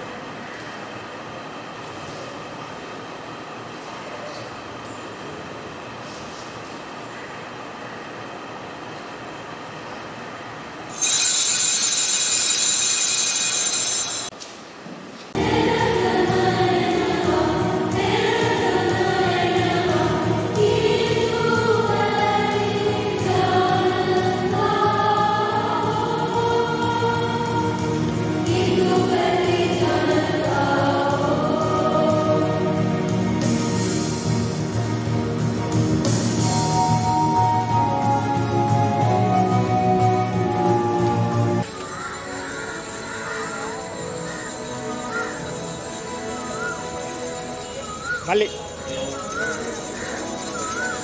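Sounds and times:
altar bells ringing: 10.9 - 14.4, 41.6 - 51.0
choir singing: 15.4 - 33.5.

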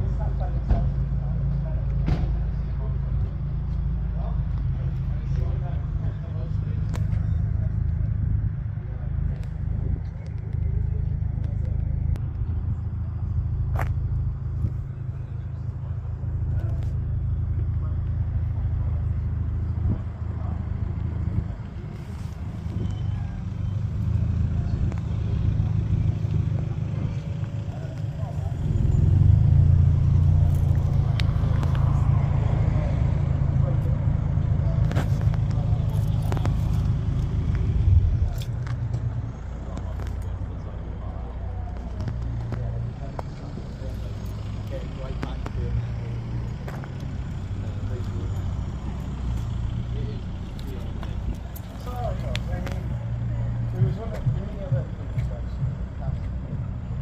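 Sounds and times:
low rumble: 0.0 - 57.0.

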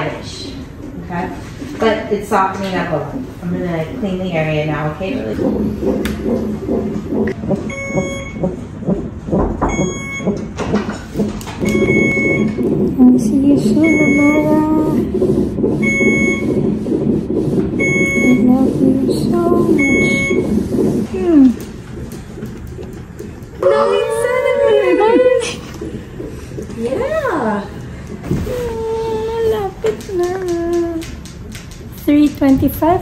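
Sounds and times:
medical alarm beeping: 5.4 - 21.5, 23.6 - 25.4
person talking: 12.9 - 15.2, 18.3 - 20.1.

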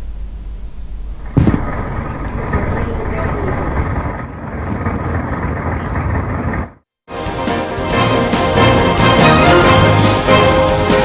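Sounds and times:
low traffic rumble: 0.0 - 6.9.

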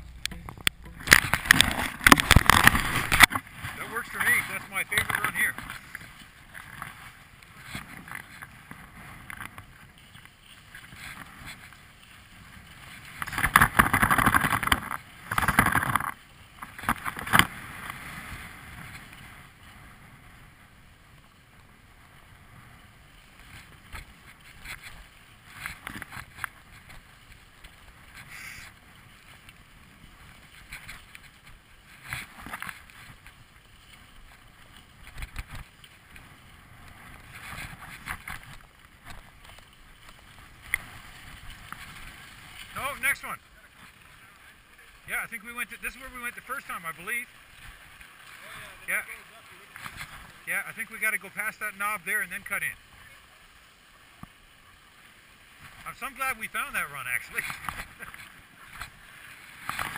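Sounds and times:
skis scraping over snow: 1.2 - 59.9.

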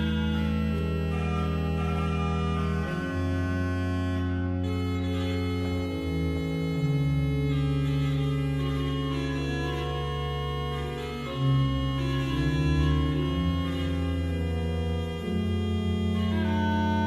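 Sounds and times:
pipe organ sustained chords: 0.0 - 17.0.

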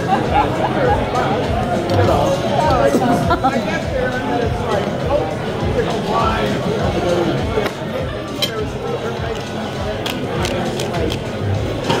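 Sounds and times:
murmur of voices: 0.0 - 12.0
cutlery clinking on plates: 7.6 - 8.7.

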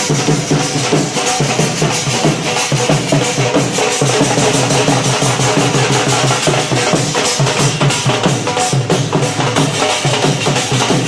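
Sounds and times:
crowd noise: 0.0 - 11.0
drums beaten with sticks: 0.0 - 11.0.

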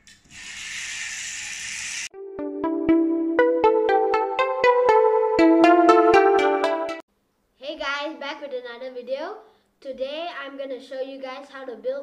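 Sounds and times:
toy car motor whirring: 0.1 - 2.1.

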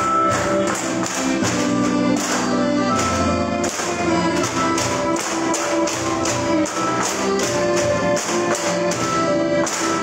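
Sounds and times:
bamboo dance music: 0.0 - 10.0
bamboo poles clacking: 0.0 - 10.0.

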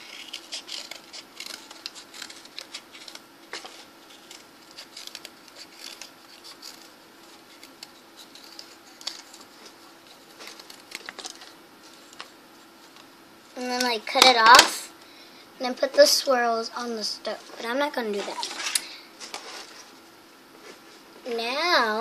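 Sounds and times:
cardboard scratching and clicking: 0.0 - 9.5
low steady hum: 0.0 - 22.0.

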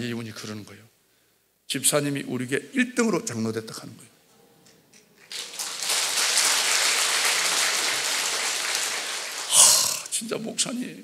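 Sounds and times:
congregation applauding: 5.3 - 10.1.

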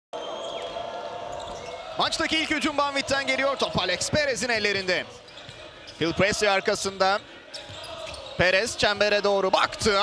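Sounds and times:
crowd in an arena: 0.1 - 10.0.

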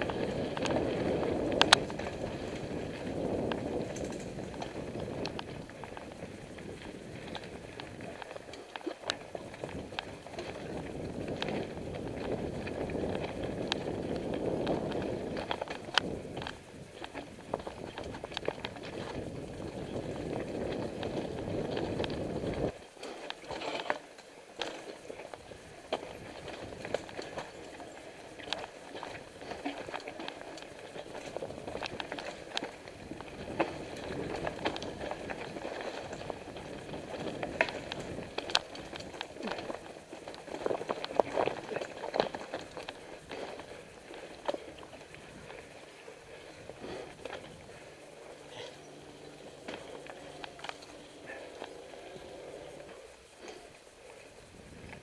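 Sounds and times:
bike knocking and rattling: 0.0 - 55.0
bike tyres on dirt: 0.0 - 55.0.

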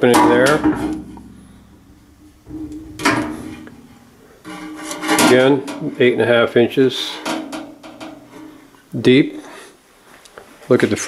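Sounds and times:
faint low hum: 0.1 - 5.9.

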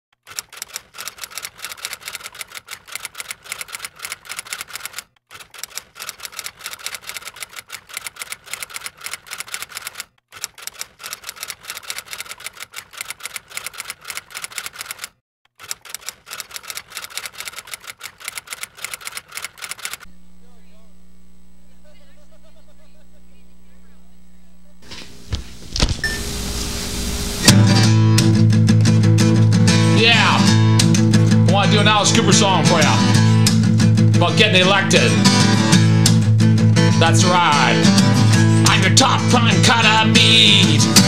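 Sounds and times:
typewriter keys clacking: 0.2 - 20.1.

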